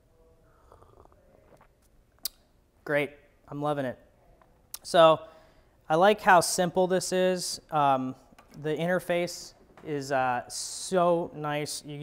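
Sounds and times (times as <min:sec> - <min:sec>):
sipping mouth sounds: 0:00.5 - 0:02.5.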